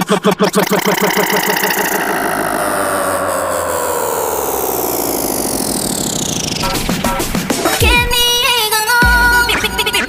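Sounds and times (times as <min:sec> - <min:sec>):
rhythmic electronic music: 0:00.0 - 0:10.0
buzzy engine-like sweep down: 0:00.5 - 0:07.8.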